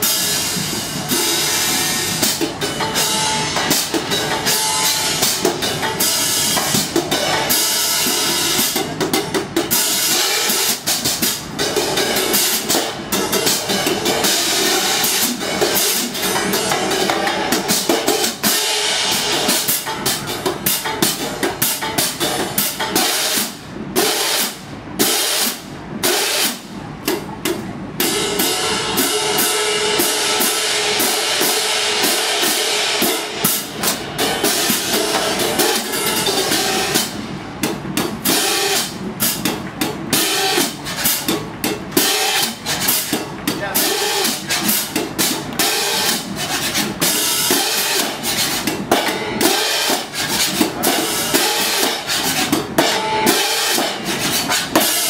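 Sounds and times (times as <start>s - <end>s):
crash cymbals crashing and choking: 0.0s - 55.0s.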